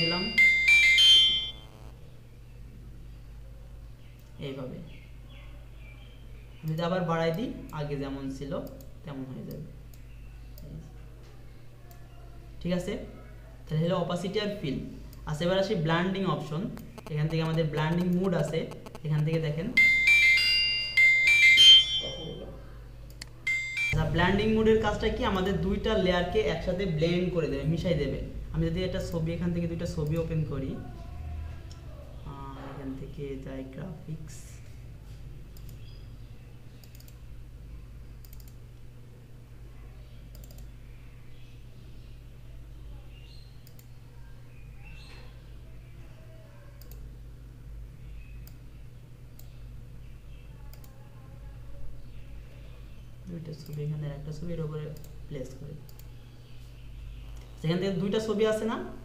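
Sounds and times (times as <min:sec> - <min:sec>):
electronic chime melody: 0:00.0 - 0:01.9, 0:19.7 - 0:22.6, 0:23.5 - 0:24.4
low electrical hum: 0:00.0 - 0:59.0
computer mouse clicks: 0:16.8 - 0:19.5, 0:29.9 - 0:30.4, 0:35.5 - 0:36.0, 0:36.7 - 0:37.2, 0:38.2 - 0:38.6, 0:40.2 - 0:40.7, 0:43.6 - 0:44.0, 0:46.8 - 0:47.1, 0:50.7 - 0:51.0, 0:55.9 - 0:56.3.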